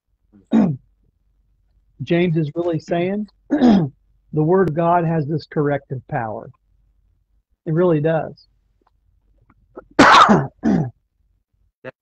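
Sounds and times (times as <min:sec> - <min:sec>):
man clearing throat coughing: 0:00.4 - 0:00.8, 0:03.5 - 0:03.9, 0:09.8 - 0:11.0.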